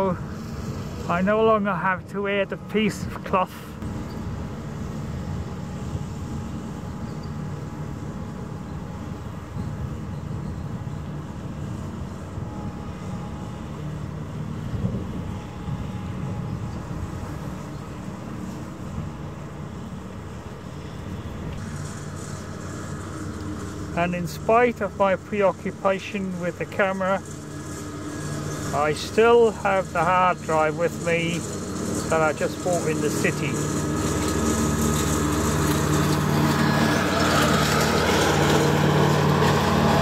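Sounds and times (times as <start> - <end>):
ferry engines droning: 0.0 - 40.0.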